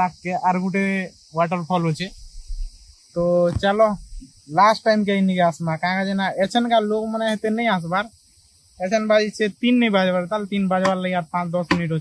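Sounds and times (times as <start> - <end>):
man speaking: 0.0 - 2.2, 3.2 - 8.1, 8.8 - 12.0.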